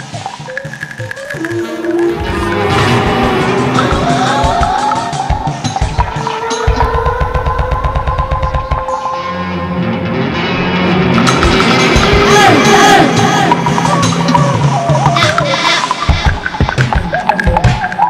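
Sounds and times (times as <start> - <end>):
experimental guitar and electronics: 0.0 - 18.0.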